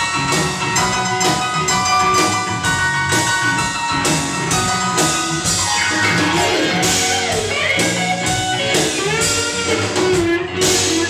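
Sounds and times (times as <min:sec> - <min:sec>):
bass guitar: 0:00.0 - 0:11.0
drum kit beat: 0:00.0 - 0:11.0
electric guitars: 0:00.0 - 0:11.0
keyboard: 0:00.0 - 0:11.0.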